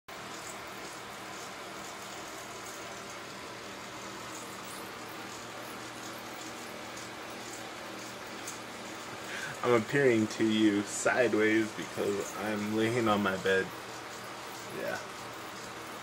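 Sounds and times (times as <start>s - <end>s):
background hiss: 0.3s - 16.0s.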